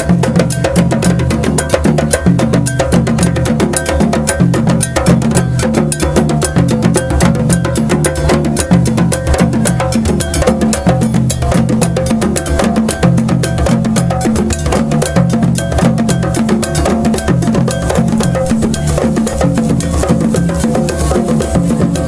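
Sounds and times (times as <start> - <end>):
djembe hand drums: 0.0 - 22.0.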